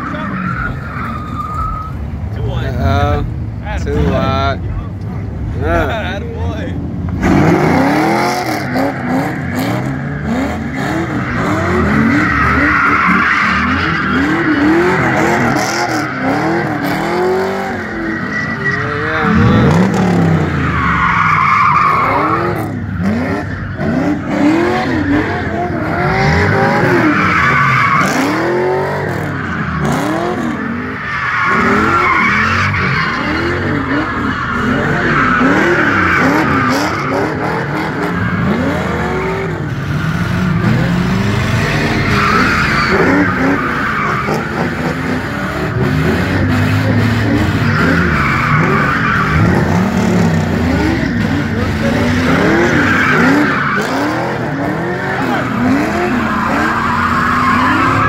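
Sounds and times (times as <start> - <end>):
tyres squealing on asphalt: 0.0 - 4.7, 5.3 - 58.0
car engine revving: 0.0 - 58.0.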